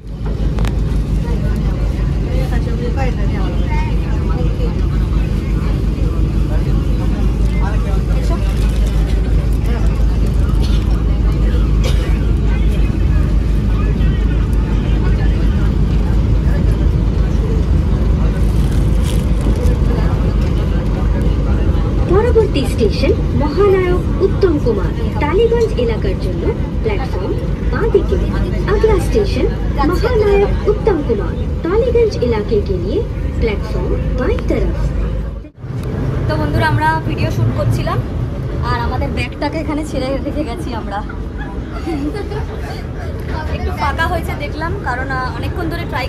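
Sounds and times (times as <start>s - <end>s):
metro train rumbling: 0.0s - 46.0s
passengers' voices: 0.0s - 46.0s.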